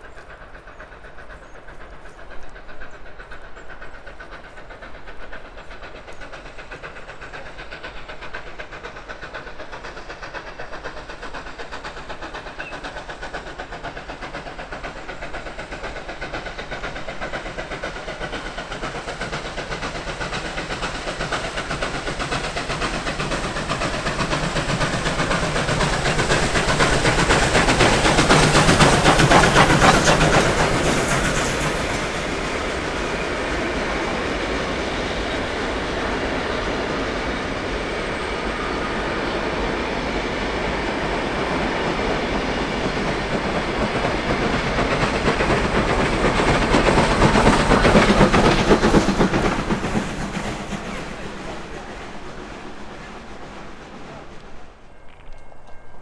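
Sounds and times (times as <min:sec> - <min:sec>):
steam locomotive exhaust beats: 0:00.0 - 0:56.0.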